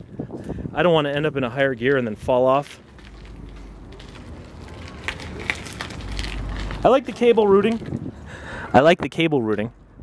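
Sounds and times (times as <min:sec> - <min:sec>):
bike tyres rolling on concrete: 0:00.0 - 0:10.0.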